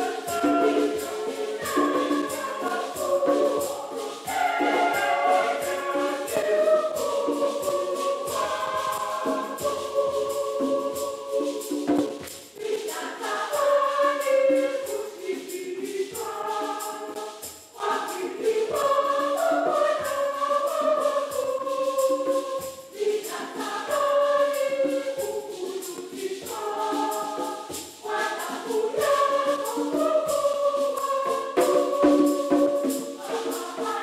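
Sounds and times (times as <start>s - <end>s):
choir singing a hymn: 0.0s - 34.0s
tambourine and shakers: 0.0s - 34.0s.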